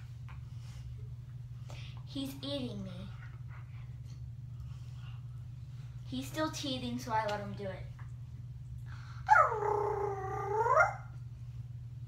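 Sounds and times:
girl howling like a dog: 0:09.3 - 0:11.1.

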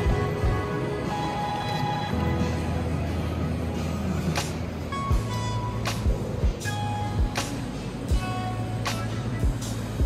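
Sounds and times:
music with bass and drum beat: 0:00.0 - 0:01.1, 0:03.7 - 0:10.0.

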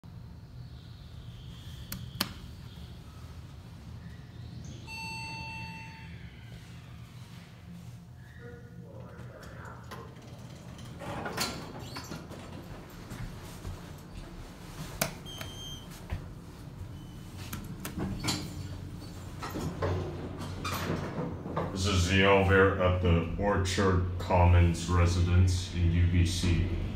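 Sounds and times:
steady low hum: 0:00.0 - 0:11.0, 0:12.6 - 0:26.9
elevator chime: 0:04.7 - 0:06.5
high beep: 0:04.9 - 0:06.2
elevator doors sliding open: 0:09.8 - 0:23.2.

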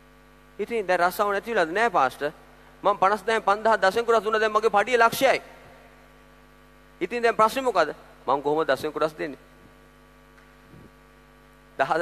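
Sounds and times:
sound system mains hum: 0:00.0 - 0:12.0
man speaking: 0:00.6 - 0:05.5, 0:07.0 - 0:09.4, 0:11.8 - 0:12.0.

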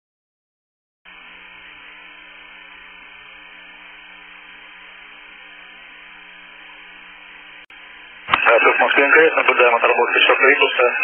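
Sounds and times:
radio link hiss and hum: 0:01.1 - 0:11.0.

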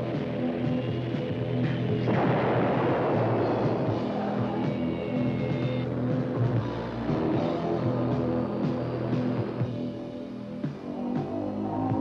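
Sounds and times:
explosion blast rumbling: 0:02.1 - 0:04.7.

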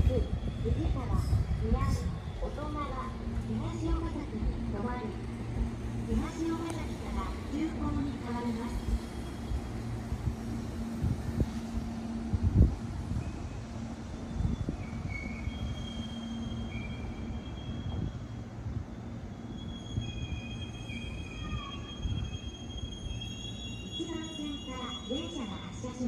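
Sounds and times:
electric train humming: 0:00.0 - 0:26.0
high-pitched wheel squeals: 0:13.2 - 0:25.6.

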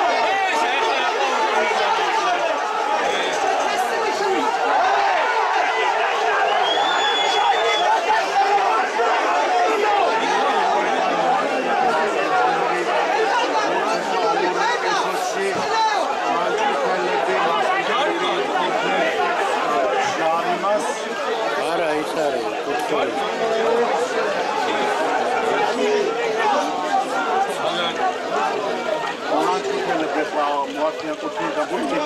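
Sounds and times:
crowd babble: 0:00.0 - 0:32.0.

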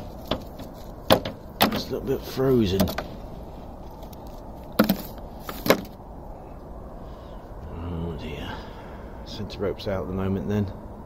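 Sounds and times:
steady low rumble: 0:00.0 - 0:11.0
knocks on steel roof: 0:00.3 - 0:01.9.

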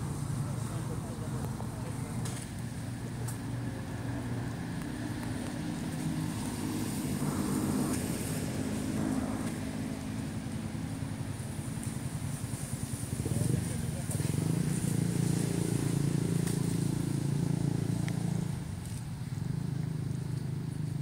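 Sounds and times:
vehicle engines rumbling: 0:00.0 - 0:21.0.

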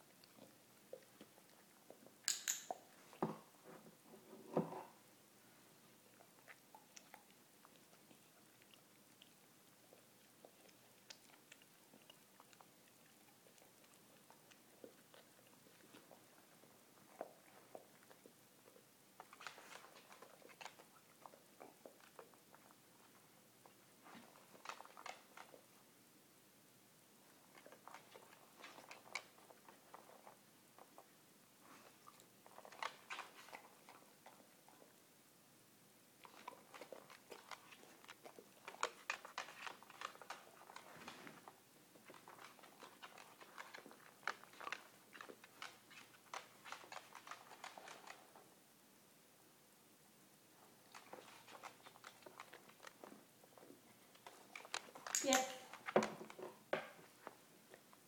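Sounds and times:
dog chewing treats: 0:06.3 - 0:25.8, 0:27.4 - 0:31.1, 0:31.8 - 0:34.9, 0:36.2 - 0:48.5, 0:50.8 - 0:58.0.

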